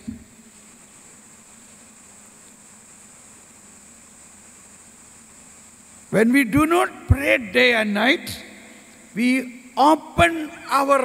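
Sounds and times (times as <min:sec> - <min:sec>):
faint low hum: 0:00.0 - 0:11.0
faint room tone hiss: 0:00.0 - 0:11.0.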